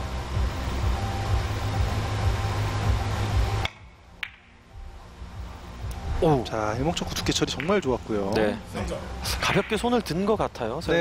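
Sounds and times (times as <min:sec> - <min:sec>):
billiard balls clicking: 0:03.6 - 0:04.5, 0:07.4 - 0:07.8.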